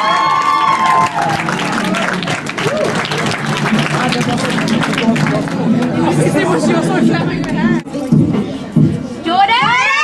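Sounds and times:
audience applauding: 0.0s - 6.6s
crowd voices: 0.0s - 10.0s.

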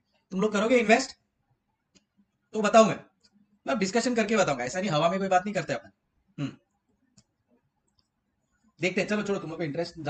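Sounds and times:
man talking: 0.3s - 1.1s, 2.6s - 3.0s, 3.7s - 6.5s, 8.8s - 10.0s.

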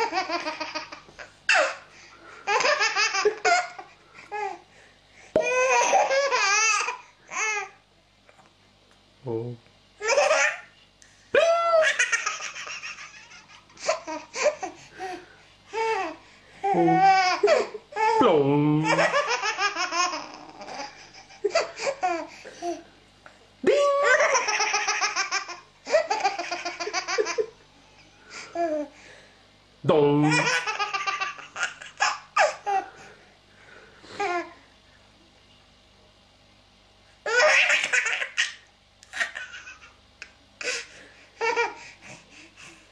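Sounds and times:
baby laughing: 0.0s - 1.8s, 2.5s - 4.5s, 5.4s - 7.7s, 10.0s - 10.7s, 11.7s - 14.8s, 16.8s - 18.2s, 18.8s - 22.8s, 24.0s - 27.6s, 30.2s - 32.8s, 37.3s - 40.8s, 41.4s - 41.8s.

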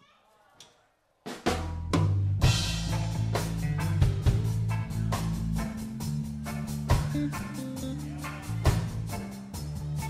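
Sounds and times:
reggae band playing: 1.4s - 10.0s
heavy drum hit: 1.5s - 9.2s
deep bass line: 1.6s - 10.0s.

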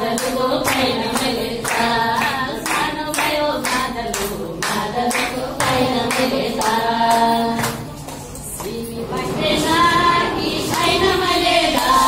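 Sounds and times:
group clapping hands: 0.0s - 12.0s.

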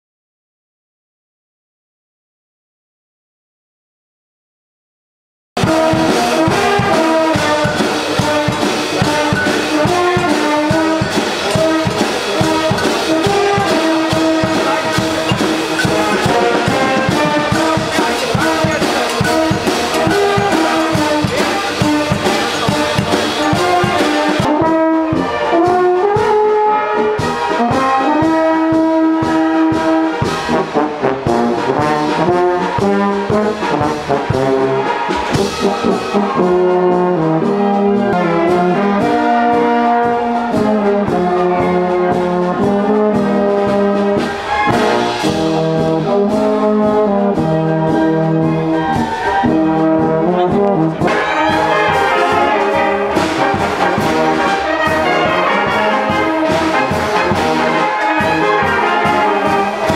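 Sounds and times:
brass band playing: 5.6s - 59.9s.

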